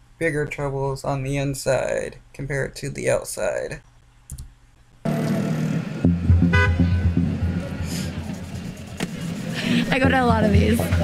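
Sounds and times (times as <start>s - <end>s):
street noise: 5.1s - 11.0s
car horn toot: 6.3s - 7.3s.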